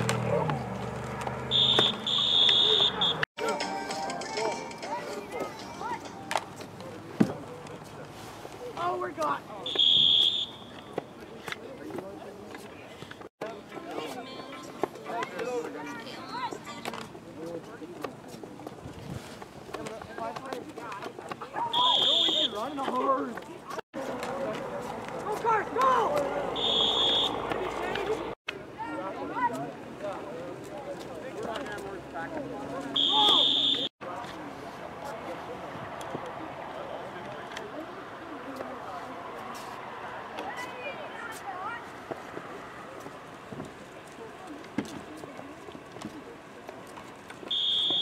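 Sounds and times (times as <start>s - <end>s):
whistle blowing shrill tone: 1.5s - 3.2s, 9.7s - 10.8s, 21.8s - 22.7s, 26.6s - 27.4s, 33.0s - 33.9s, 47.5s - 48.0s
people shouting: 33.0s - 33.9s.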